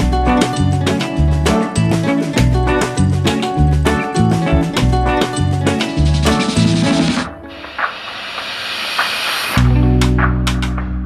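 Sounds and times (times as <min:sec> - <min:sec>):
background music: 0:00.0 - 0:08.5, 0:09.5 - 0:11.0
hiss: 0:07.5 - 0:09.6.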